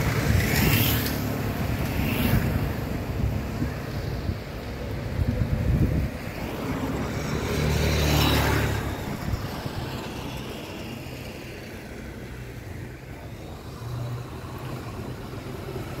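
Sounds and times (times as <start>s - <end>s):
car passing: 0.0s - 16.0s
engine hum: 0.0s - 16.0s
street background: 0.0s - 16.0s.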